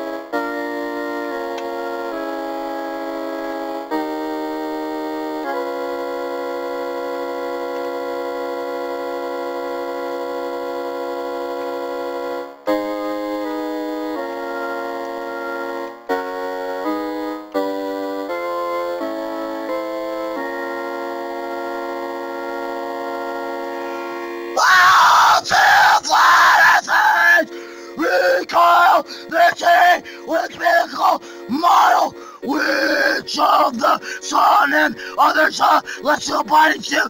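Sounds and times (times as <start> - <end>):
sustained keyboard chord: 0.0 - 37.0
person yelling: 24.6 - 37.0.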